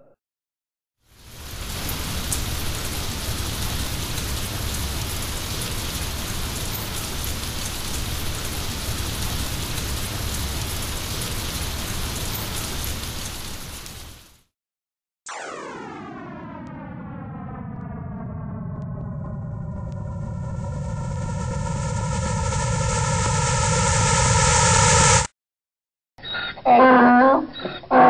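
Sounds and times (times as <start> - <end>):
rain-like rushing noise: 1.0 - 14.5, 18.8 - 25.3.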